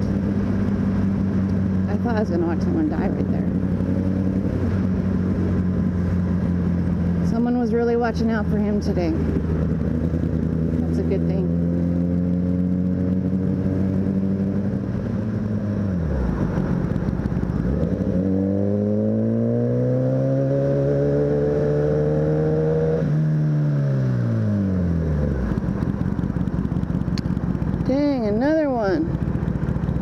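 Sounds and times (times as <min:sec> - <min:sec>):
motorcycle engine accelerating: 0:00.0 - 0:30.0
wind and road rush: 0:00.0 - 0:30.0.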